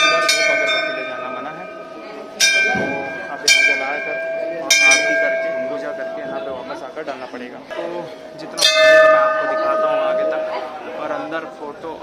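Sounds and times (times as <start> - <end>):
brass bells ringing: 0.0 - 11.7.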